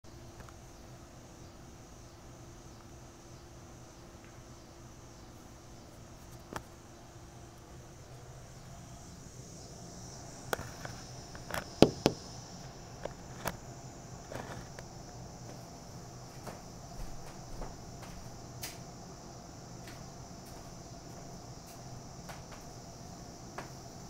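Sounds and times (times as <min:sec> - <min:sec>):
insects chirring: 0:00.1 - 0:24.0
sharp knocks and clicks: 0:11.5 - 0:12.3.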